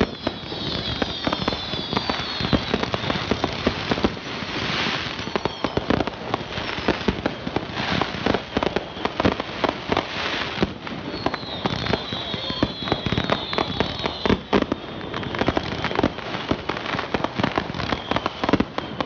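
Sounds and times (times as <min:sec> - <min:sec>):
falling firework whistles: 0:00.0 - 0:19.0
fireworks bangs and crackling: 0:00.0 - 0:19.0.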